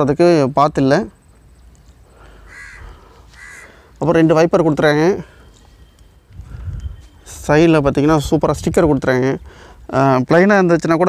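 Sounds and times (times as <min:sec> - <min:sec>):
bird harsh calls: 0:01.5 - 0:04.1.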